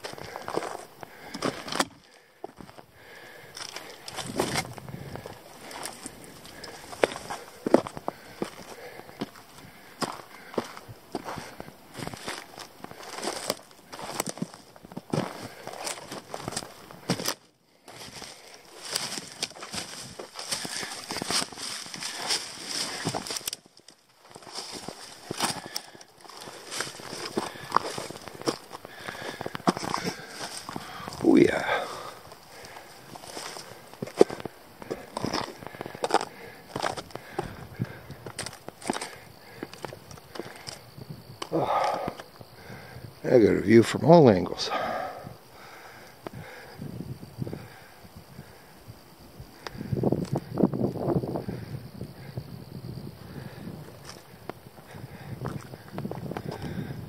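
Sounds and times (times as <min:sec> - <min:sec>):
footsteps crunching over rock: 0:00.0 - 0:42.8, 0:48.4 - 0:50.7, 0:51.4 - 0:57.0
brushing of twigs and branches: 0:11.9 - 0:28.7.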